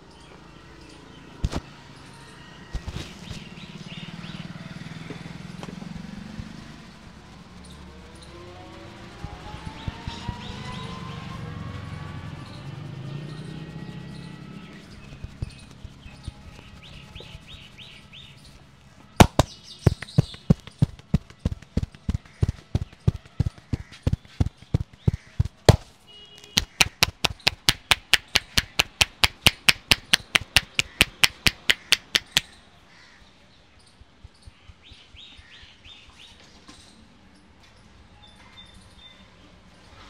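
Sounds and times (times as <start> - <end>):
faint birds chirping: 0.0 - 40.0
hands slapping on head: 19.2 - 32.5.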